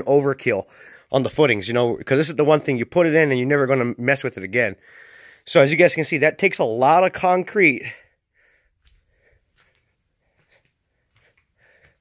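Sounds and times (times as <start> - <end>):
faint breaths: 0.7 - 1.1, 4.8 - 5.5, 7.8 - 12.0.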